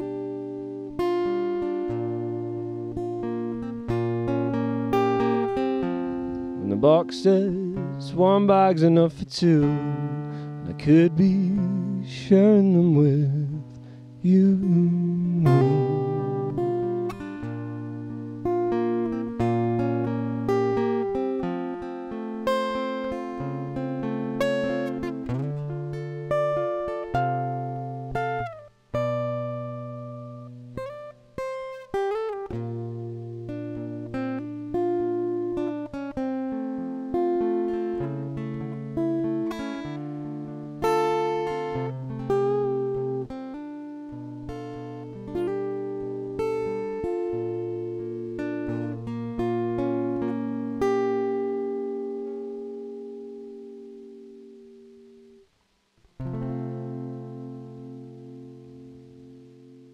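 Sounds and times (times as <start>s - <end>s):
acoustic guitar picking chords: 0.0s - 59.9s.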